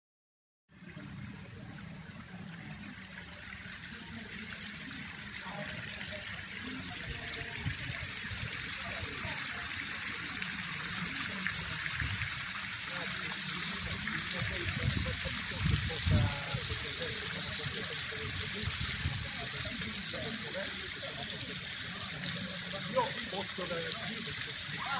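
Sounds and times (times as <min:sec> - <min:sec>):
fountain water splashing: 0:00.7 - 0:24.9
people's voices: 0:00.8 - 0:24.9.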